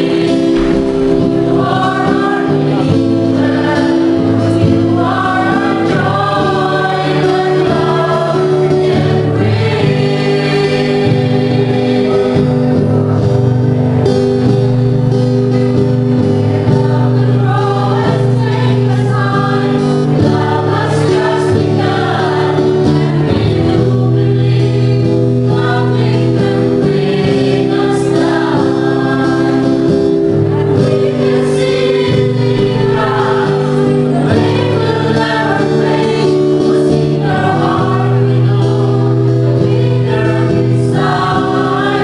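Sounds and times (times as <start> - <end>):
acoustic guitar: 0.0 - 42.0
choir singing: 0.0 - 42.0.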